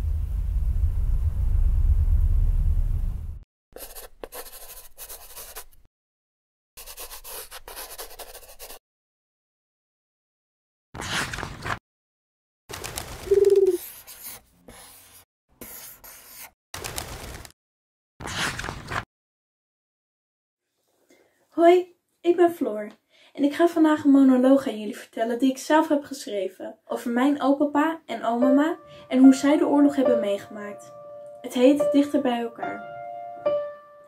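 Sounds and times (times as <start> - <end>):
low steady rumble: 0.0 - 3.4
book pages rustling: 11.0 - 11.8, 12.7 - 17.5
dove cooing: 13.3 - 13.8.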